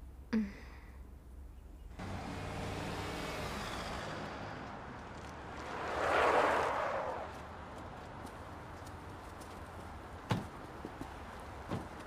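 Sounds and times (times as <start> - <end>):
cars driving past: 2.0 - 9.2.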